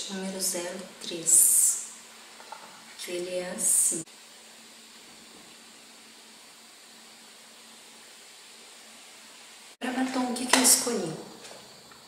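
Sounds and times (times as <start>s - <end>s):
steady noise floor hiss: 0.0s - 12.0s.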